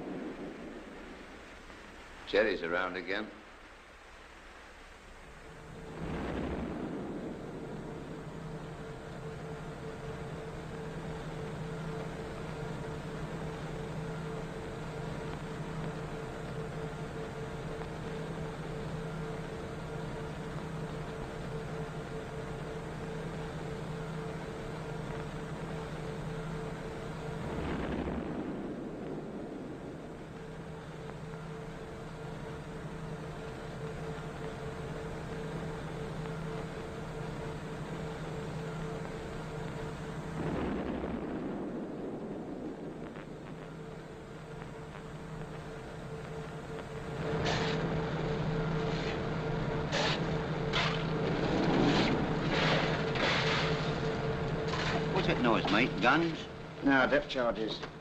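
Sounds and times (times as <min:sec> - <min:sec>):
steady hum: 0:00.0 - 0:58.0
depth charges exploding: 0:05.9 - 0:09.0, 0:27.5 - 0:30.5, 0:40.4 - 0:44.0.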